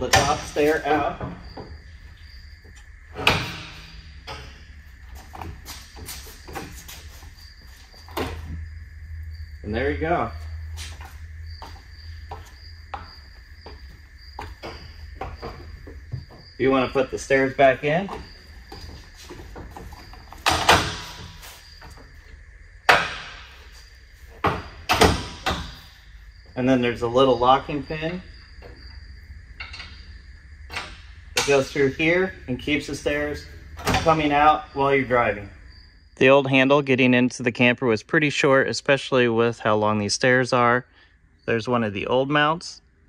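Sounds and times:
metal steps clanking and rattling: 0:10.8 - 0:22.2.

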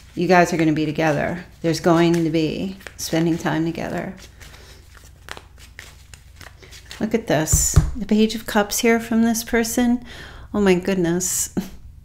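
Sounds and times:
cards flicking and rustling: 0:01.7 - 0:08.0.

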